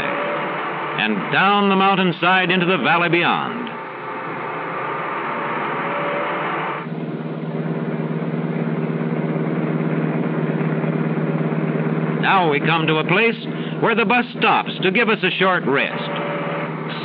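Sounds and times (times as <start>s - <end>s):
fluttering engine drone: 0.0s - 17.0s.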